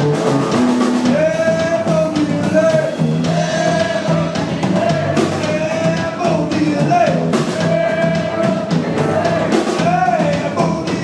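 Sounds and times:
drum kit: 0:00.0 - 0:11.0
man singing: 0:01.0 - 0:11.0.

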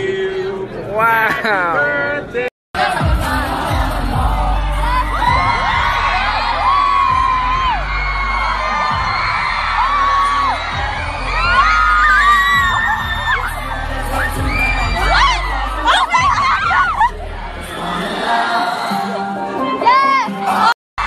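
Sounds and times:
live pop concert music: 0:00.0 - 0:20.7
crowd screaming and singing along: 0:00.0 - 0:20.8.

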